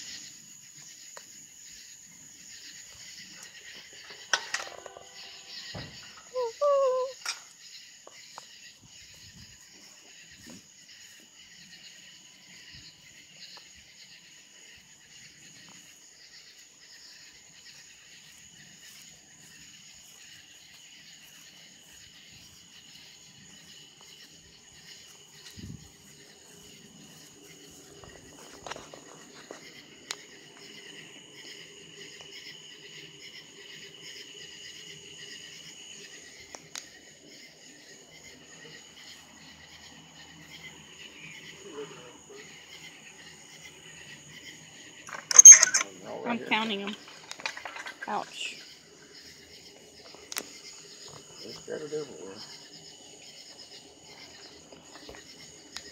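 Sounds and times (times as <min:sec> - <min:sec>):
night insects chirping: 0:00.0 - 0:55.9.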